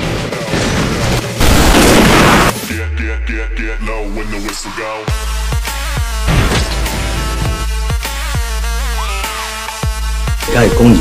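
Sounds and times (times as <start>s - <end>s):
dense gunfire: 0.0s - 2.6s
film music: 0.0s - 11.0s.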